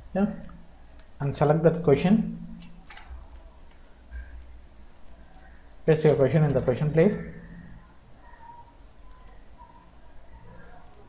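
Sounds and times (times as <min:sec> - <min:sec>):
computer mouse clicks: 0:01.0 - 0:01.2, 0:02.6 - 0:05.3, 0:09.1 - 0:09.4, 0:10.7 - 0:11.0.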